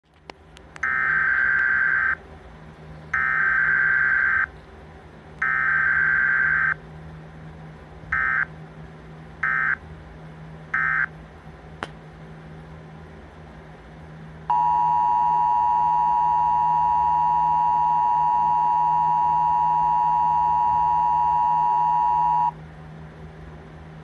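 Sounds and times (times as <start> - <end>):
steady low hum: 0.0 - 24.0
screeching digital alert tones: 0.9 - 2.2, 3.2 - 4.5, 5.4 - 6.8, 8.2 - 8.5, 10.8 - 11.1.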